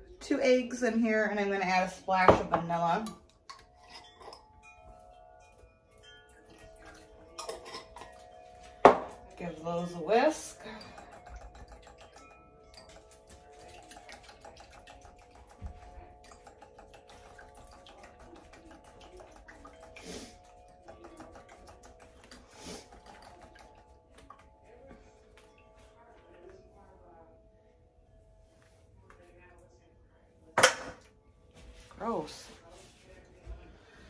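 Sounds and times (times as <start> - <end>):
eggs whisked by hand in bowl: 3.5 - 26.4.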